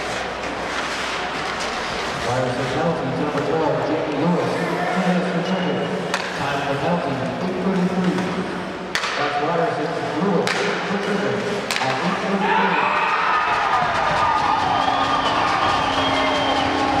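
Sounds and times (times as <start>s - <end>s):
crowd cheering and shouting: 12.3s - 17.0s.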